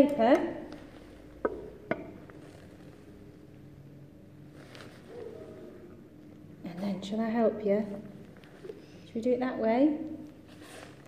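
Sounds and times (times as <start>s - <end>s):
hard objects knocking on table: 1.4s - 2.2s.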